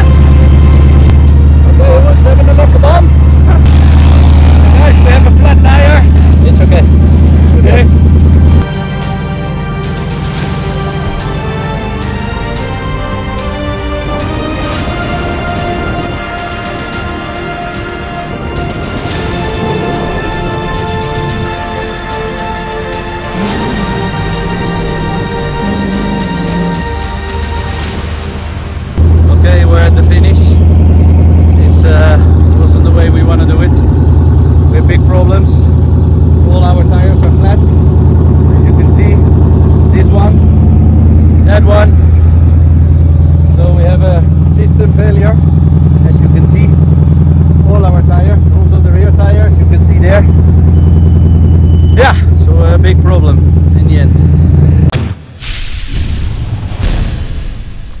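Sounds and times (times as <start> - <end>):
background music: 0.0 - 55.2
loud steady low rumble: 0.0 - 58.0
man talking: 1.6 - 3.6, 4.7 - 6.9, 29.2 - 30.7, 31.5 - 33.9, 34.7 - 35.7, 36.4 - 37.7, 38.5 - 39.3, 39.9 - 40.4, 41.4 - 42.0, 43.5 - 45.4, 46.0 - 46.8, 47.6 - 50.4, 52.0 - 54.3
sharp impact: 54.9 - 58.0.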